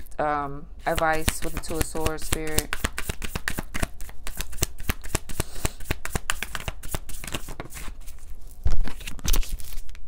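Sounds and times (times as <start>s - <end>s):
cards being shuffled: 0.8s - 10.0s.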